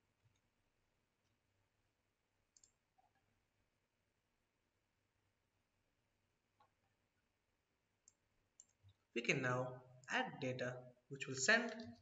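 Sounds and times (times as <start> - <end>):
computer mouse click: 2.5 - 2.8.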